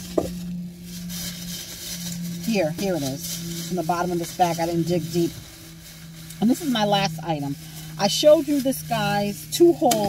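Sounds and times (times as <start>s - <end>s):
plastic bag rustling: 0.0s - 10.0s
steady low hum: 0.0s - 10.0s.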